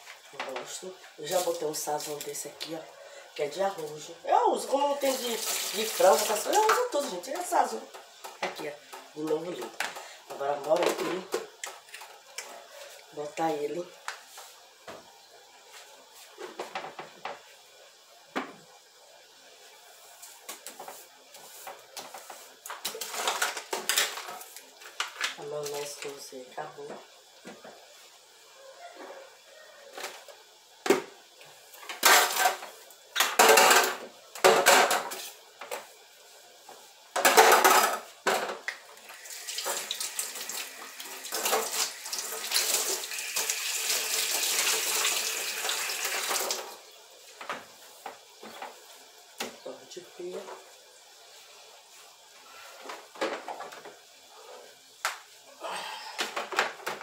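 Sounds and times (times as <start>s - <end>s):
dishes clattering: 33.2s - 35.2s, 37.2s - 38.6s.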